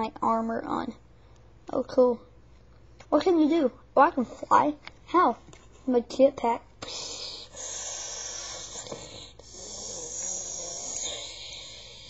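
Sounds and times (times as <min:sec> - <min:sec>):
child making hissing mouth sound: 0:06.8 - 0:12.0.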